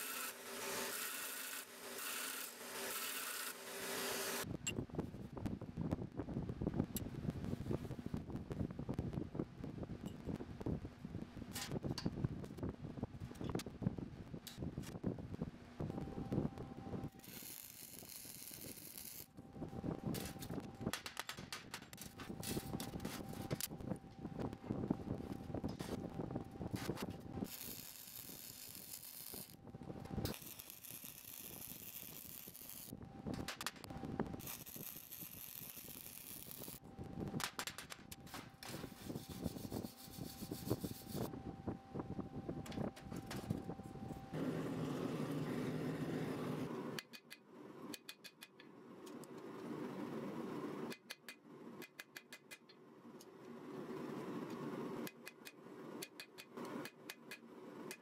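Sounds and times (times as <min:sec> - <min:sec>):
arc welding crackling: 0:17.1 - 0:19.4, 0:26.8 - 0:41.3.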